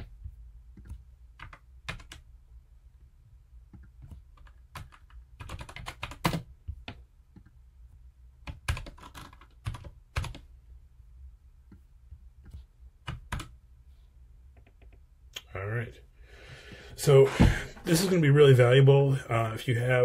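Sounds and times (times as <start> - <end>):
computer keyboard typing: 0.8 - 2.3, 3.8 - 7.6, 8.4 - 10.5, 12.4 - 13.6.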